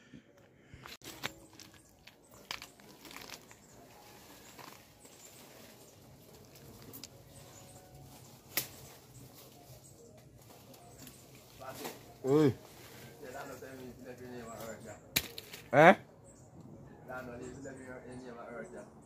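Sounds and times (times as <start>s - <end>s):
branches snapping and creaking: 0.8s - 13.0s, 14.5s - 15.8s
leaves rustling: 0.8s - 15.7s
sharp cracks of branches: 1.0s - 5.4s, 8.1s - 9.5s, 15.1s - 15.8s.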